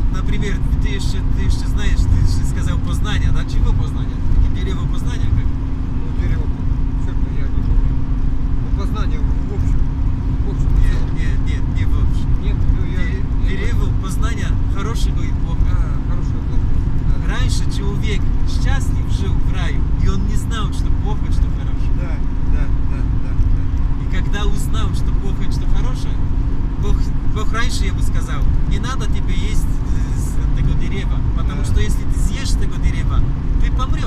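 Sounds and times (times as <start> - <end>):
man talking: 0.0 - 7.9, 8.7 - 26.2, 26.8 - 34.0
constant low hum: 0.0 - 34.0
engine and road rumble: 0.0 - 34.0.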